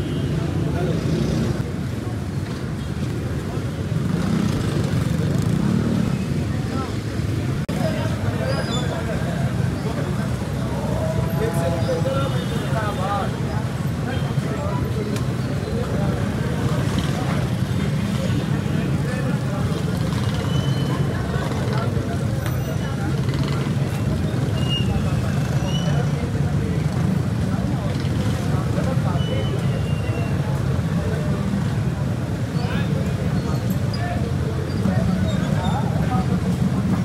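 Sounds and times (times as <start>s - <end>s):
street traffic rumble: 0.0s - 37.0s.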